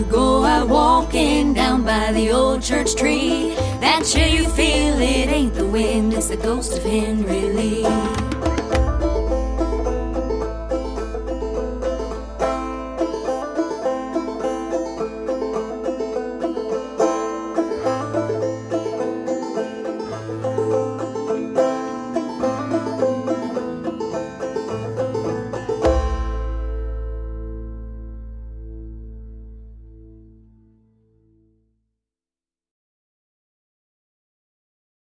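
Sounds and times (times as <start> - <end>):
country banjo music: 0.0 - 30.8.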